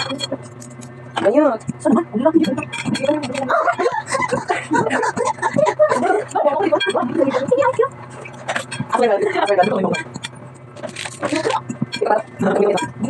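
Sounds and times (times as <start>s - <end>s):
people talking: 0.0s - 0.6s, 1.2s - 13.0s
steady low hum: 0.0s - 13.0s.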